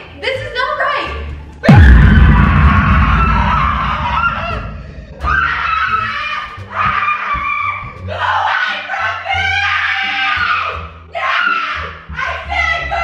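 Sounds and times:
music: 0:00.0 - 0:13.0
loud low thump: 0:01.7 - 0:05.6.

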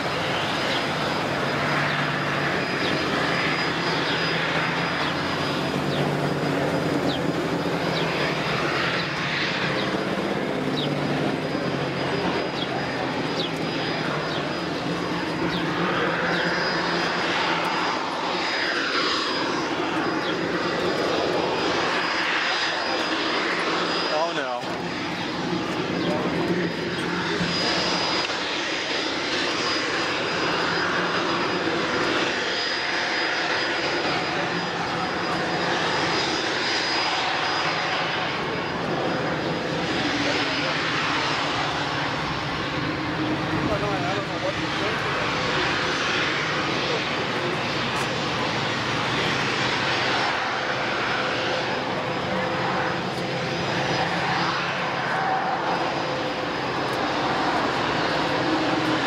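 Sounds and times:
airplane engine passing: 0:00.0 - 0:59.0.

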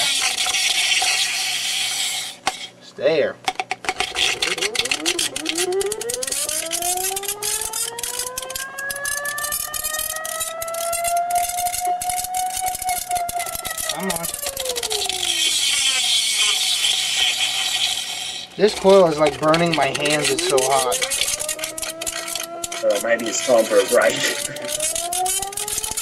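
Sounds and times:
steel ball rattling in plastic tube: 0:00.0 - 0:02.7, 0:03.5 - 0:26.0
motor whine: 0:04.2 - 0:16.7, 0:18.0 - 0:26.0.

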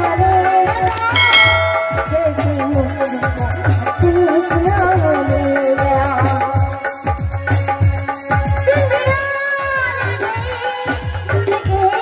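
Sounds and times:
bright bell chime: 0:01.0 - 0:02.6
low drum beats: 0:01.0 - 0:02.9
woman singing: 0:08.7 - 0:12.0.

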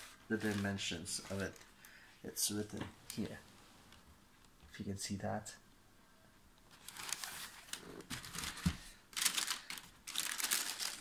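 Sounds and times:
wrapping paper crinkling: 0:00.0 - 0:01.7, 0:06.7 - 0:11.0.

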